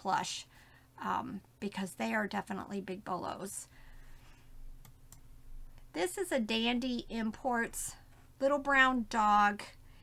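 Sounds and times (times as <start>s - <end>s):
quiet room hum: 0.0s - 10.0s
computer mouse clicking: 4.8s - 5.3s.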